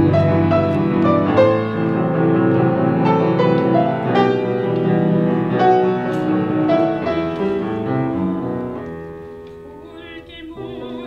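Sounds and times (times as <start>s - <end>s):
solo piano: 0.0s - 11.0s.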